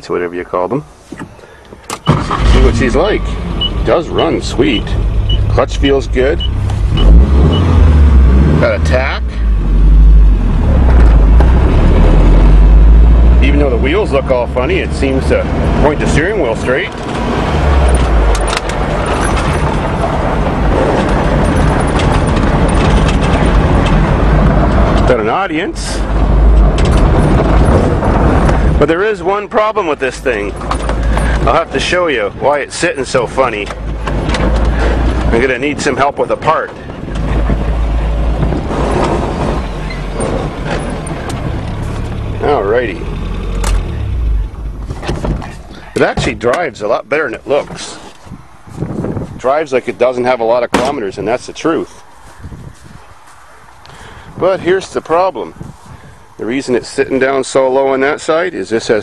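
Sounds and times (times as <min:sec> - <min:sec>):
truck engine driving: 0:00.0 - 0:59.0
tyres on gravel: 0:13.3 - 0:59.0.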